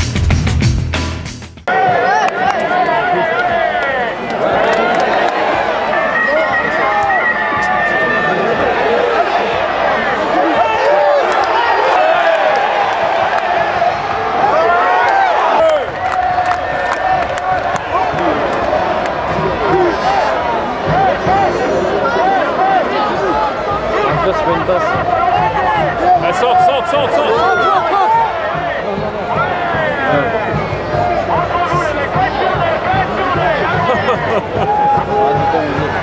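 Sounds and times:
stadium crowd shouting: 1.7 - 36.0.

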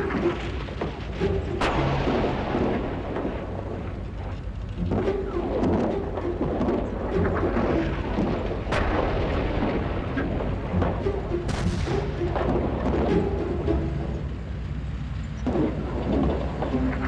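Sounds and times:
continuous low rumble: 0.0 - 17.0
faint background music: 0.0 - 17.0
explosion booms: 1.6 - 3.8.

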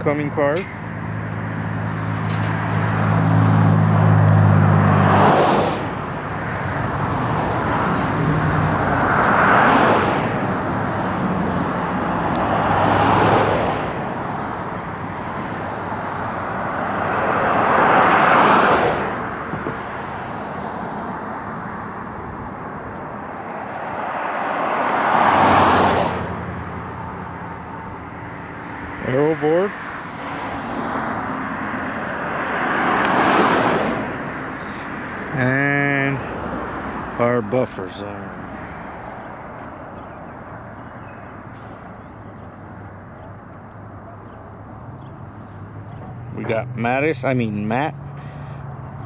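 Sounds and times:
vehicles passing: 0.0 - 49.0.

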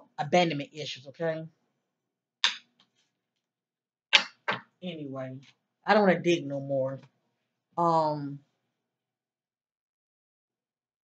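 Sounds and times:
woman speaking: 0.0 - 1.5, 4.8 - 7.0, 7.8 - 8.4.

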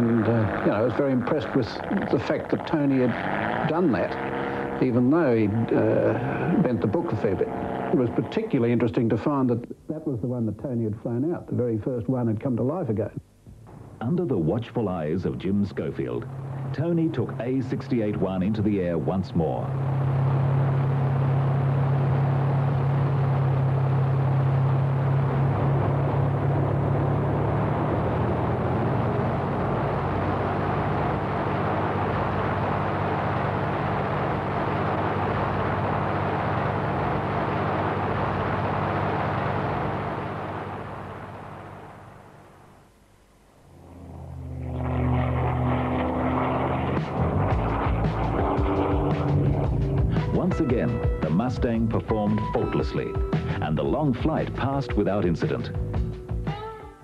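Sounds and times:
propeller aircraft engine drone: 0.0 - 57.0
music: 46.9 - 57.0.

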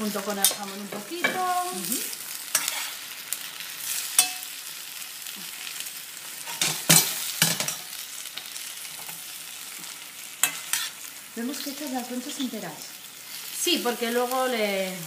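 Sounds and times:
food sizzling in hot oil: 0.0 - 15.0.

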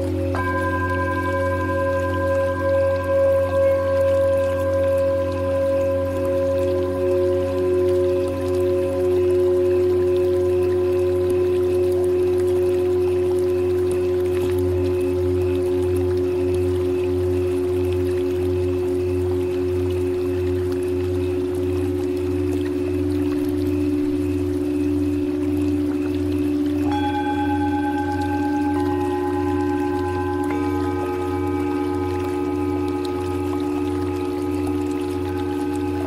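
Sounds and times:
low drone: 0.0 - 36.0
singing bowls ringing: 0.0 - 36.0.

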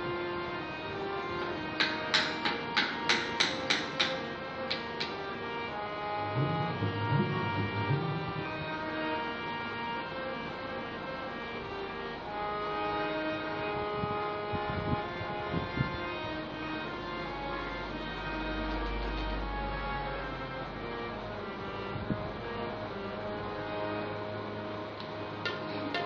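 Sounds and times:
harmonium playing: 0.0 - 26.0
deep drum strokes: 6.3 - 9.0.

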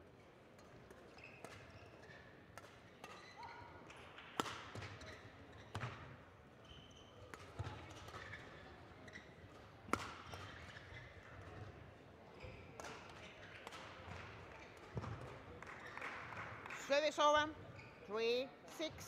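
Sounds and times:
shoes squeaking on court: 1.1 - 2.2, 6.6 - 11.6, 17.6 - 19.0
rackets hitting shuttlecock: 4.2 - 5.0, 9.8 - 10.8.

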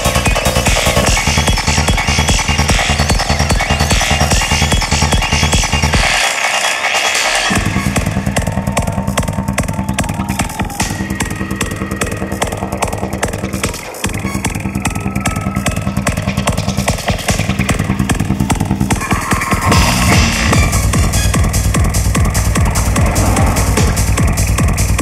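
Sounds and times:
psytrance music: 0.0 - 25.0
fast rolling bass line: 7.5 - 25.0.

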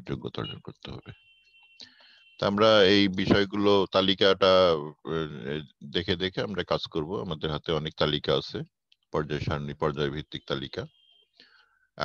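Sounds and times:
man speaking: 0.0 - 1.1, 2.4 - 10.9
faint thin tone: 0.0 - 3.5.

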